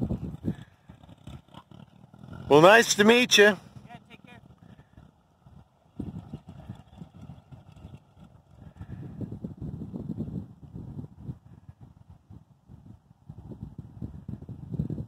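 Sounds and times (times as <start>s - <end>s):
dune buggy engine puttering: 0.0s - 10.6s.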